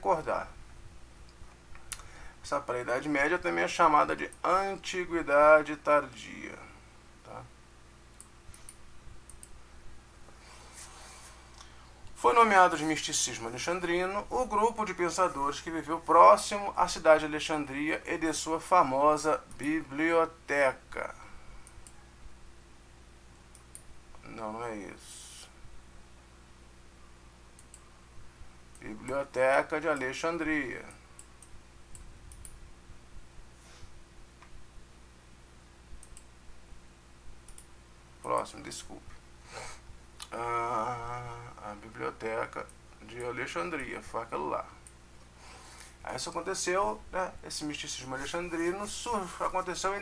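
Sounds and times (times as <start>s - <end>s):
low steady hum: 0.0s - 50.0s
faint computer clicks: 8.1s - 9.6s, 19.5s - 19.8s, 23.5s - 24.3s, 27.6s - 27.9s, 30.9s - 32.6s, 36.0s - 36.3s, 37.4s - 37.7s.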